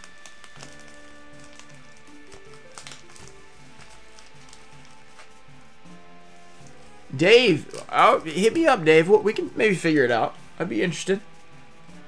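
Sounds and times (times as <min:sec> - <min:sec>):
foil packs crinkling: 0:00.0 - 0:05.7
soft background music: 0:00.0 - 0:12.0.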